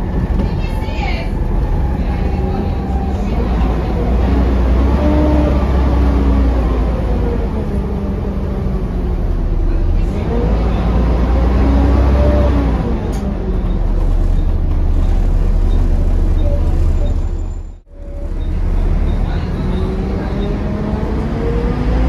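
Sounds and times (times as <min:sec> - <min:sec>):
bus engine rumble and whine: 0:00.0 - 0:22.0.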